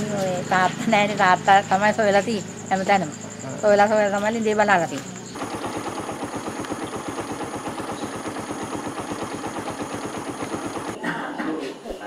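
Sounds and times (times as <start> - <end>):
voices: 0.0 - 12.0
engine running with rapid pulse: 5.4 - 11.0.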